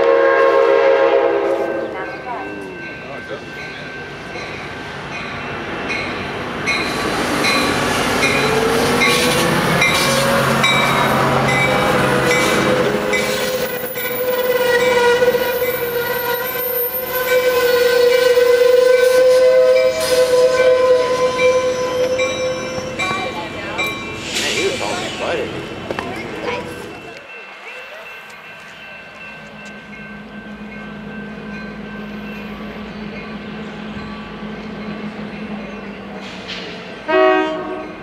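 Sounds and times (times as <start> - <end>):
high steady train squeal: 0.0 - 38.0
train pulling into station: 0.0 - 38.0
bell ringing: 2.0 - 15.0, 21.4 - 24.2, 26.1 - 36.2.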